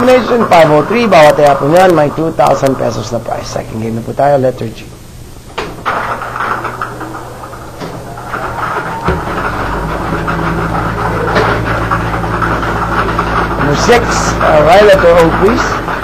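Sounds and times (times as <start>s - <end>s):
motor humming: 4.8s - 16.0s
balls rattling in plastic drum: 5.8s - 16.0s.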